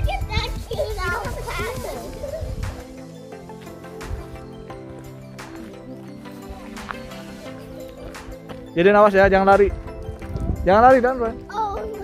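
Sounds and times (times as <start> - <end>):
young child calling and babbling: 0.0 - 2.6, 11.4 - 12.0.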